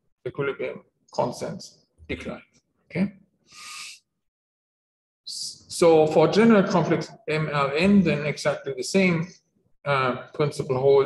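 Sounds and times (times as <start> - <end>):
man speaking: 0.3 - 3.8, 5.3 - 11.0.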